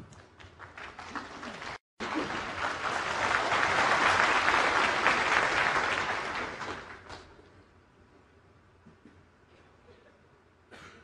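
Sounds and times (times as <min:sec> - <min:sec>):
audience applauding: 0:00.4 - 0:07.3.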